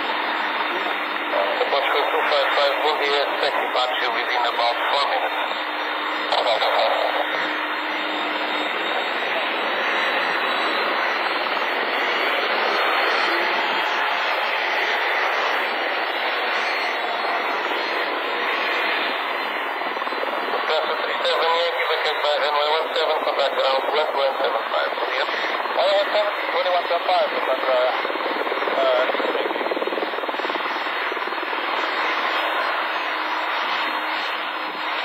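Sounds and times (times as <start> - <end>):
jet engines rushing: 0.0 - 35.0
radio voice: 0.7 - 7.6, 20.3 - 29.6.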